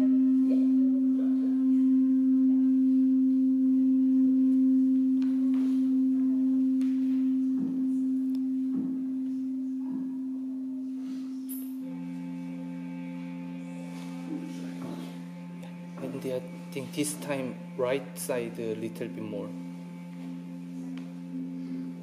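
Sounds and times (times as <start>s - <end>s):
ambient music with low held tone: 0.0s - 22.0s.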